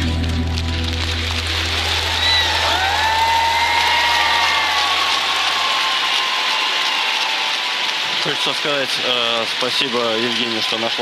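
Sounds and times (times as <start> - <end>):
deep bass drone music: 0.0 - 3.7
audience applauding: 0.0 - 11.0.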